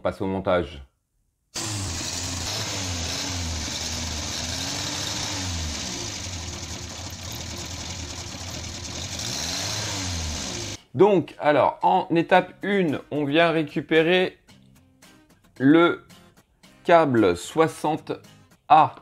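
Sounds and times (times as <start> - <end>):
car engine revving: 1.6 - 10.8.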